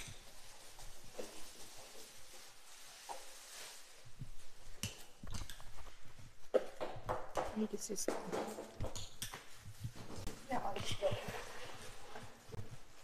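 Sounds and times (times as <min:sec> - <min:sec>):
plastic wrap crinkling: 0:00.0 - 0:06.5.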